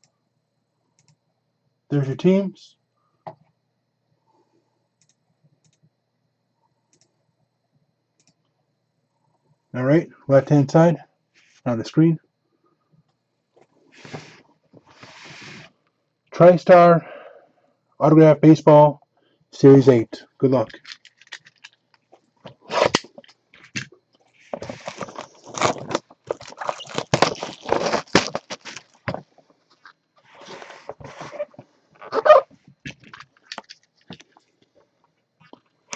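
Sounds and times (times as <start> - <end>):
cardboard scraping and rustling: 14.0 - 15.7, 24.4 - 32.5
plastic wrapping crinkling: 20.7 - 21.9, 22.5 - 34.4.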